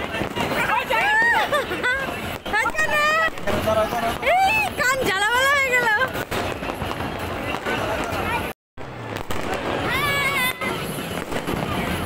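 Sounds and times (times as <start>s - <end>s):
fireworks crackling: 0.0s - 12.0s
sharp firecracker cracks: 9.0s - 12.0s.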